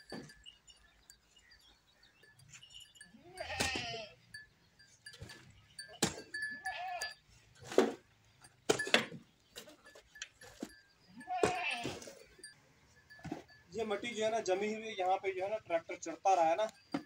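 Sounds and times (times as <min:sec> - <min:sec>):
goat bleating: 0:03.1 - 0:04.2, 0:06.4 - 0:07.2, 0:11.1 - 0:12.3
soil loaded into metal wheelbarrow: 0:07.4 - 0:10.8
shovel scraping and knocking: 0:07.6 - 0:08.1.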